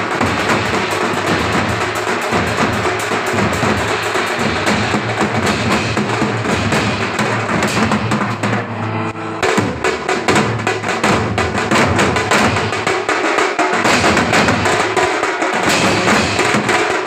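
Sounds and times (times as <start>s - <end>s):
street drum band playing: 0.0s - 17.0s.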